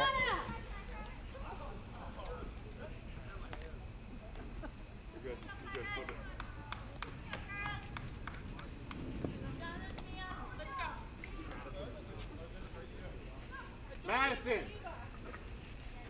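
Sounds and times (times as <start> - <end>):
distant voices chattering: 0.0 - 16.0.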